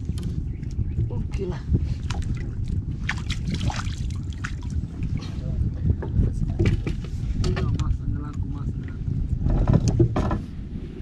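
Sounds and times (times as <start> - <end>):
water against boat hull: 0.0 - 10.7
wind rumble on microphone: 0.0 - 11.0.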